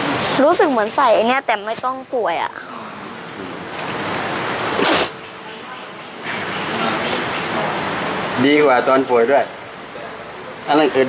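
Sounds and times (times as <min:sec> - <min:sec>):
sharp burst of breath: 0:04.8 - 0:05.2.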